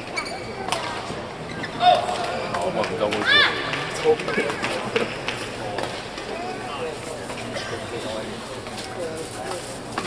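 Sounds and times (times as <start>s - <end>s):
voices in arena: 0.0s - 10.0s.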